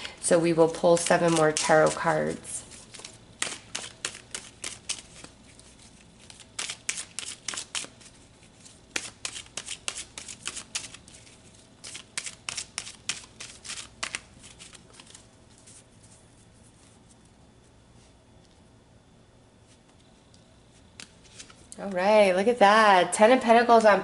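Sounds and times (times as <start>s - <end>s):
cards being shuffled: 0.7s - 17.2s, 20.9s - 21.8s.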